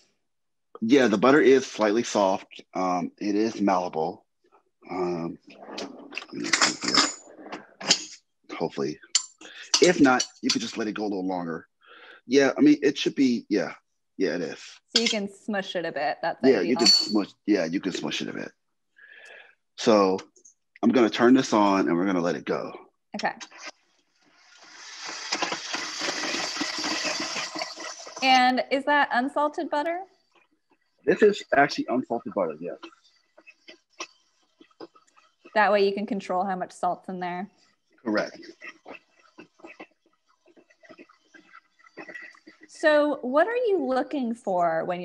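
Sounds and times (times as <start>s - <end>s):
utensil scraping metal bowl: 24.6s - 28.4s.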